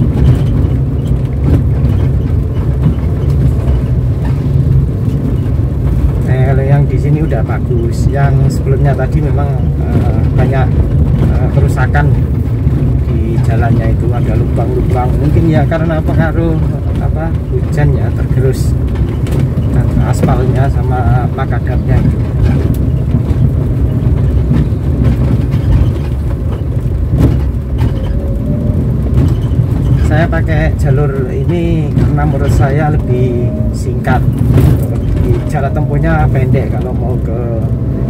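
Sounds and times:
car engine and road rumble: 0:00.0 - 0:38.0
person talking: 0:13.1 - 0:18.8, 0:19.7 - 0:22.2, 0:30.0 - 0:37.8.

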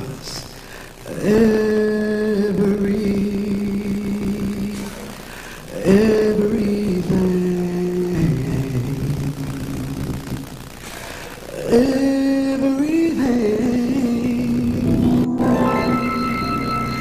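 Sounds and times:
gospel singing: 0:01.0 - 0:10.6, 0:11.5 - 0:17.0.

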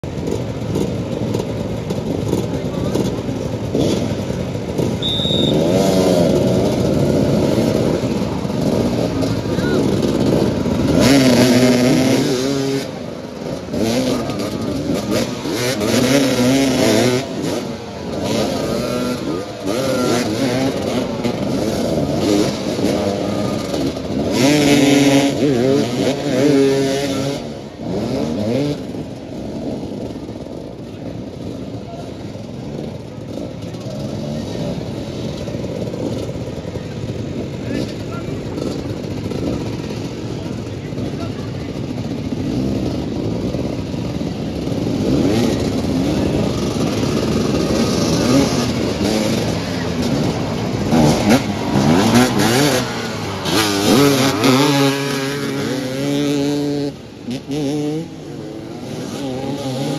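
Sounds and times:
motorcycles revving: 0:00.0 - 0:59.9.

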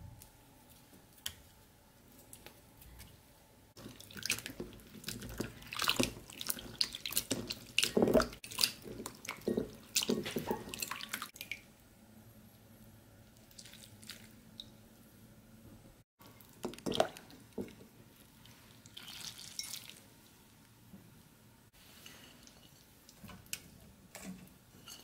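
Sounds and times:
water dripping: 0:03.8 - 0:11.7.

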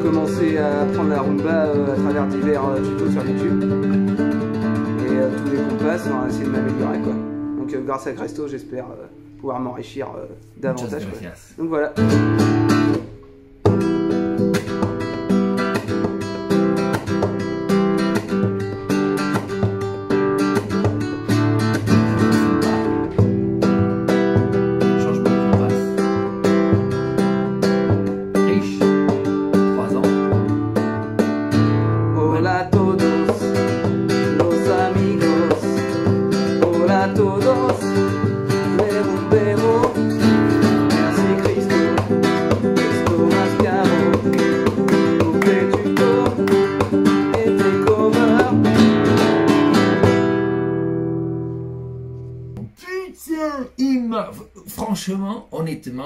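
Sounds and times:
man singing: 0:00.0 - 0:04.0, 0:04.7 - 0:07.2, 0:21.9 - 0:22.9, 0:24.8 - 0:26.4, 0:28.3 - 0:30.5, 0:32.0 - 0:49.2
nylon-string guitar strumming: 0:00.0 - 0:53.0.

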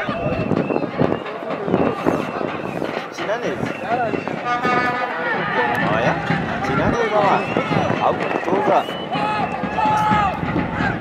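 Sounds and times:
overlapping voices talking: 0:00.0 - 0:11.0.

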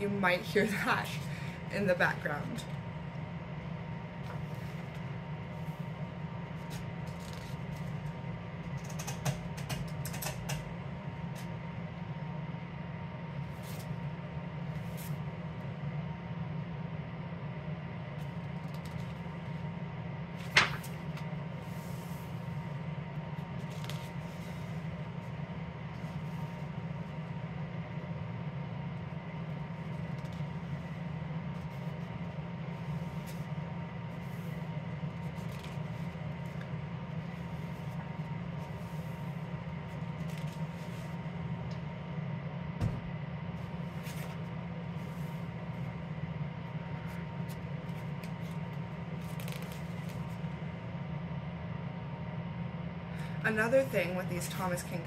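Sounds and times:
heating system humming: 0:00.0 - 0:55.0
pages turned and smoothed: 0:04.2 - 0:05.0, 0:06.6 - 0:08.0, 0:13.5 - 0:14.0, 0:14.7 - 0:15.2, 0:20.4 - 0:22.7, 0:23.4 - 0:25.3, 0:29.8 - 0:32.2, 0:32.8 - 0:33.5, 0:34.1 - 0:41.2, 0:43.6 - 0:45.8, 0:47.0 - 0:50.5
paper rustling: 0:06.6 - 0:08.1, 0:20.4 - 0:22.6, 0:23.4 - 0:24.8, 0:35.2 - 0:36.7, 0:38.6 - 0:41.2, 0:43.9 - 0:45.4, 0:47.0 - 0:50.4.

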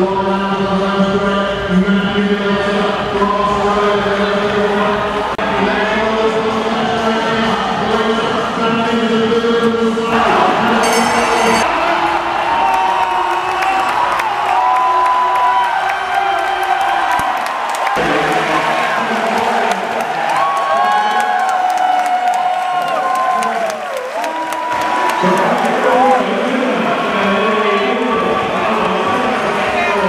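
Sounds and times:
crowd cheering and shouting: 0:10.1 - 0:30.0
clapping: 0:12.6 - 0:26.2.

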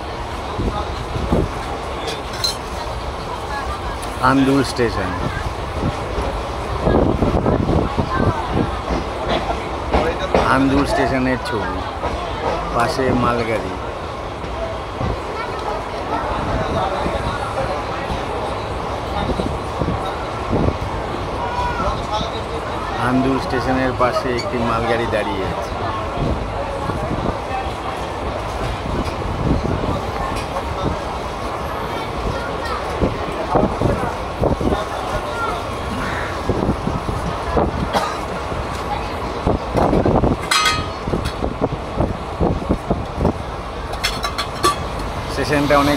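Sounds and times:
train wheels rumbling on rail: 0:00.0 - 0:45.9
faint voice: 0:14.5 - 0:23.2
wheels clattering over rail joints: 0:37.2 - 0:45.9
sharp metal clanks: 0:40.5 - 0:41.0.

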